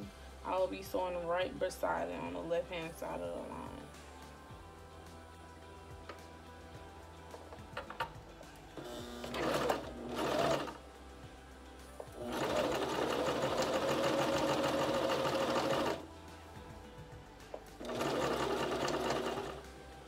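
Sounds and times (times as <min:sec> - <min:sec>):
sewing machine stitching: 0:08.8 - 0:10.8, 0:12.2 - 0:16.0, 0:17.8 - 0:19.6.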